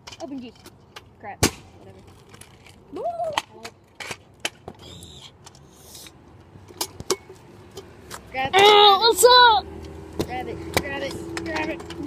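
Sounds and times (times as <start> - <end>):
scooter rolling on concrete: 6.3 - 12.0
scooter wheel clicks and knocks: 10.2 - 12.0.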